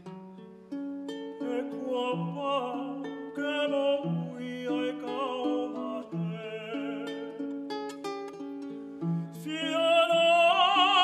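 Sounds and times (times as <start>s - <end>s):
ukulele chords: 0.0s - 11.0s
man singing with vibrato: 1.3s - 7.7s, 9.0s - 11.0s.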